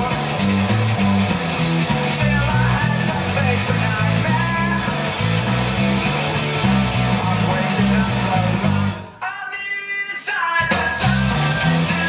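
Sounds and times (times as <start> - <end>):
electric bass rock line: 0.0 - 9.1, 10.6 - 12.0
rock band backing track: 0.0 - 9.2, 10.1 - 12.0.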